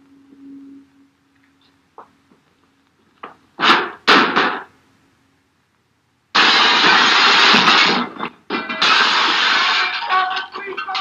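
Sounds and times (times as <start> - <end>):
loud burst of noise: 6.3 - 10.1.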